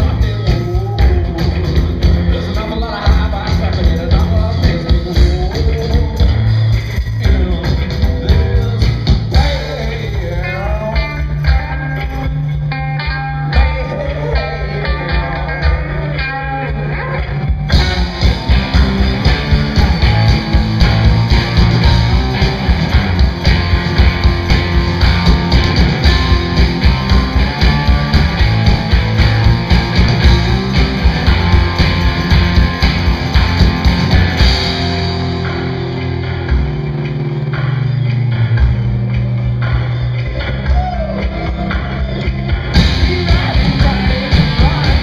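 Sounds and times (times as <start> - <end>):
bending lead guitar line: 0.0 - 45.0
rock band with drums and cymbals: 0.0 - 45.0
held bass note: 17.7 - 39.8.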